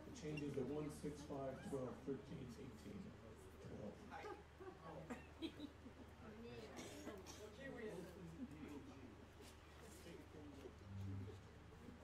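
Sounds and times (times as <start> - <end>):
faint low murmuring voice: 2.9 - 12.0
steady low hum: 10.6 - 12.0.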